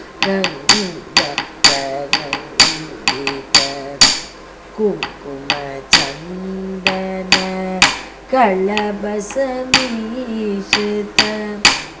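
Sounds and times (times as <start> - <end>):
person singing: 0.2 - 4.2, 4.8 - 12.0
wooden stick striking wooden block: 0.2 - 4.4, 5.0 - 6.2, 6.8 - 8.1, 8.7 - 10.1, 10.7 - 12.0.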